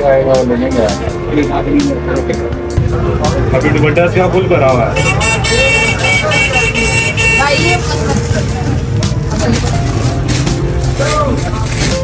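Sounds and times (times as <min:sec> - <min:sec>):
voices talking: 0:00.4 - 0:10.3
low rumble of traffic: 0:02.8 - 0:12.0.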